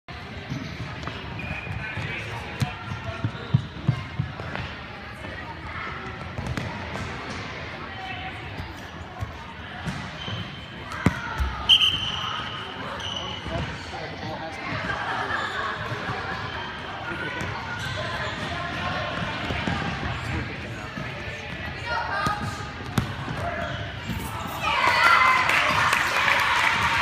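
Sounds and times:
referee's whistle blast: 0:11.6 - 0:13.4.

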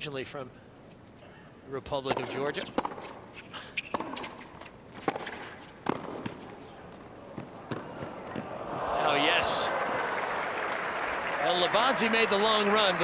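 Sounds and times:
ball bouncing on hard court: 0:02.0 - 0:03.2, 0:03.8 - 0:04.4, 0:05.0 - 0:06.5, 0:07.3 - 0:08.6
racquet striking tennis ball: 0:02.0 - 0:06.6, 0:07.3 - 0:08.5
crowd noise: 0:06.6 - 0:13.0.

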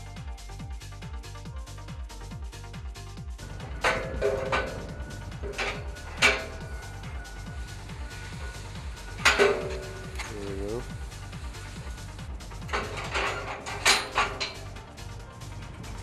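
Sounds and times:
electronic music with steady beat: 0:00.0 - 0:16.0
metal clanks: 0:03.4 - 0:16.0.

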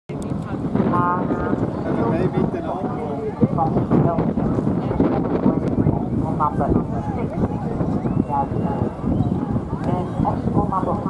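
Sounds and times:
wind rumble on microphone: 0:00.1 - 0:11.0
announcer over loudspeakers: 0:06.2 - 0:09.0.

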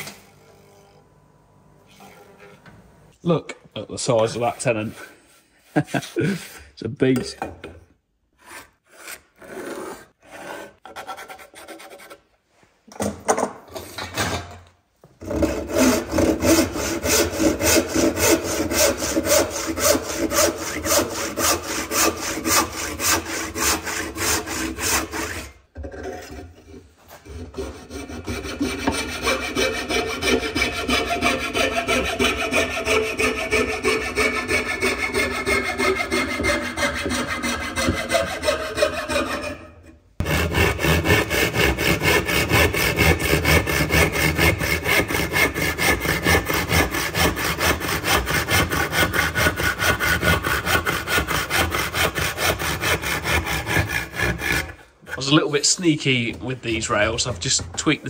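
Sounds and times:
hand saw strokes: 0:04.1 - 0:06.7, 0:08.4 - 0:12.3, 0:15.2 - 0:58.0
coping saw rasping: 0:15.2 - 0:58.0.

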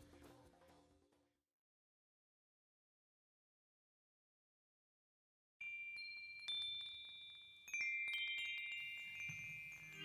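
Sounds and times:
chimes ringing: 0:05.6 - 0:10.0.

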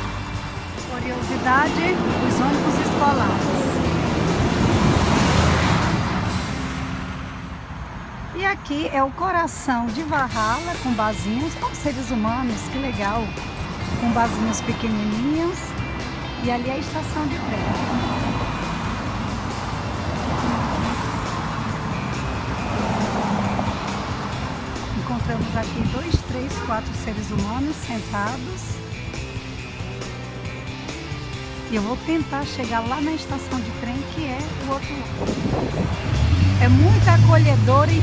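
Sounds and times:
background music: 0:00.0 - 0:07.8, 0:08.4 - 0:38.0
truck driving past: 0:00.0 - 0:08.3, 0:13.3 - 0:27.1, 0:34.4 - 0:38.0
cars passing on a road: 0:00.0 - 0:38.0.

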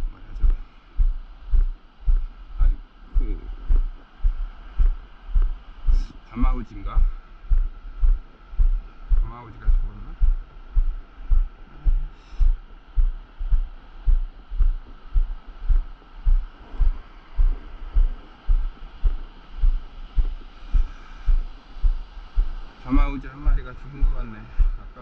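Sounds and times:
low thumps of walking steps: 0:00.0 - 0:25.0
faint hiss of surf: 0:11.7 - 0:12.4, 0:16.1 - 0:25.0.

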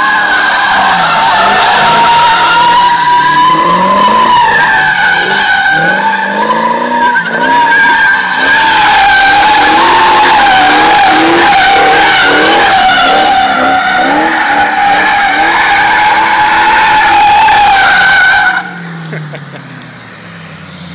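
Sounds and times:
car engine revving: 0:00.0 - 0:20.9.

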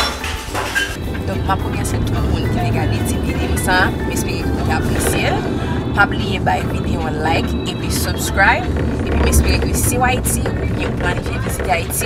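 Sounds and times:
music playing: 0:00.0 - 0:12.0
road and engine rumble: 0:00.0 - 0:12.0
voice: 0:01.1 - 0:12.0.

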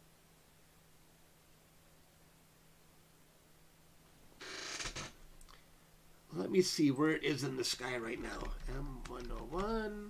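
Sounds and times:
chair creaking: 0:04.4 - 0:05.2, 0:08.1 - 0:09.9.

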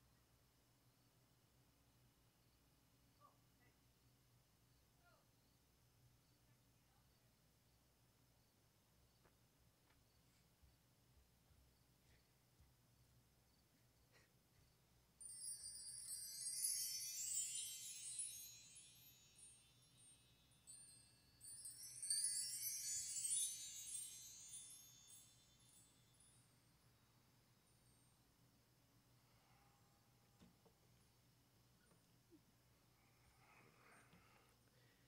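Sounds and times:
metal wind chimes ringing: 0:15.2 - 0:26.9.

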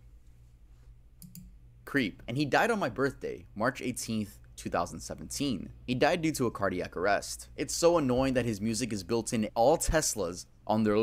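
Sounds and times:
faint low hum: 0:00.0 - 0:11.0
computer mouse clicks: 0:01.2 - 0:01.6.

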